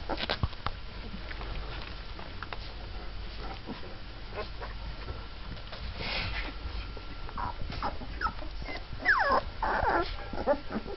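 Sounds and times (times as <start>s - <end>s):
puppy whimpering: 7.4s - 10.9s.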